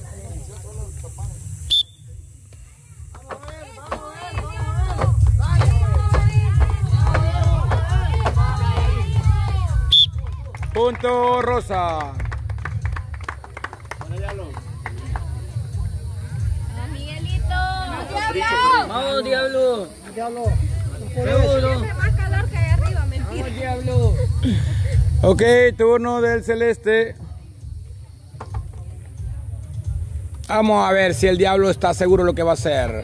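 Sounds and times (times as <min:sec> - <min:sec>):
crowd voices: 0:00.0 - 0:10.6, 0:12.7 - 0:26.2
short sharp claps: 0:03.2 - 0:15.4.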